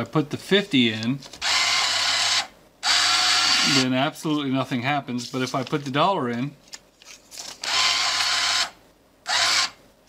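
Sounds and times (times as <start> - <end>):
bill acceptor motor running: 1.4 - 3.9, 7.6 - 9.8.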